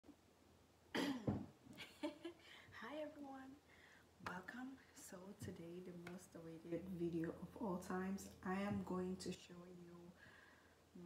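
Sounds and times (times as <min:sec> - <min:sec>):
woman coughing: 0:01.0 - 0:01.4.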